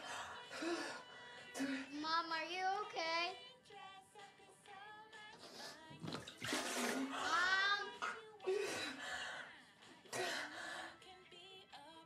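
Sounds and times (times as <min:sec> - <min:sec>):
woman retching and vomiting: 0:05.9 - 0:09.0.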